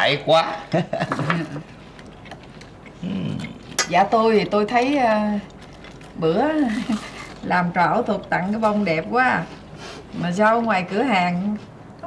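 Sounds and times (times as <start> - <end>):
person murmuring: 3.0 - 3.6.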